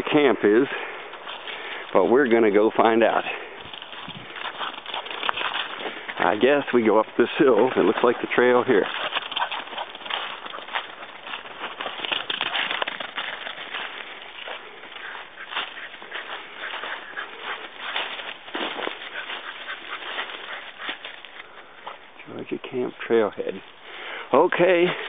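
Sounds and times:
footsteps crunching dry leaves: 0.0 - 22.2.

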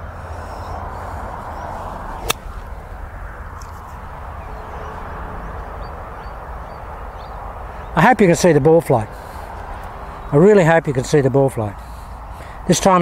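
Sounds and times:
golf club striking ball: 2.2 - 2.8.

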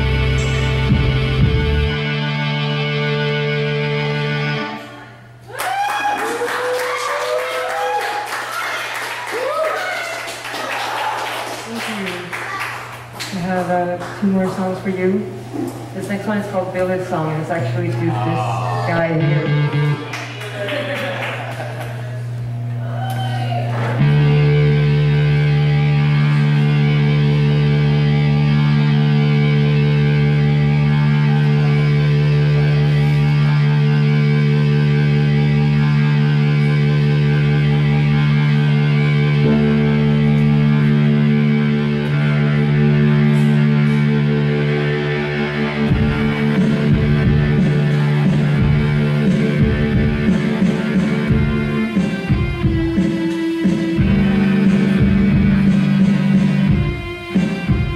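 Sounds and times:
low pulsing beat: 0.0 - 2.5, 24.0 - 57.9
droning keyboard chord: 0.0 - 5.1, 17.4 - 20.5, 23.9 - 57.9.

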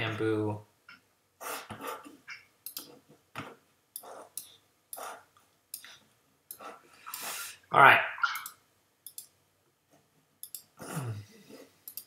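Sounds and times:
sharp mouse clicks: 2.6 - 2.9, 8.3 - 9.3, 10.4 - 10.7.

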